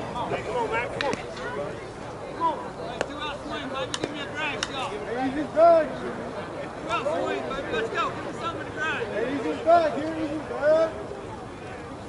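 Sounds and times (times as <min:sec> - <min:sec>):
people calling out and chattering: 0:00.0 - 0:12.0.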